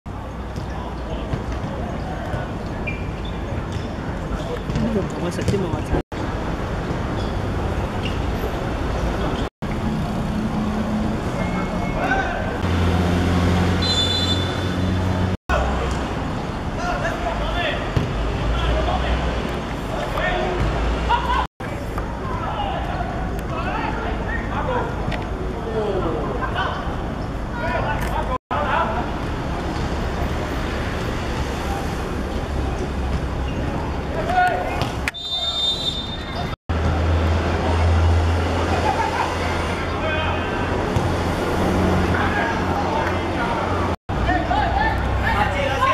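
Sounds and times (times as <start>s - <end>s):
road traffic noise: 0.1s - 45.9s.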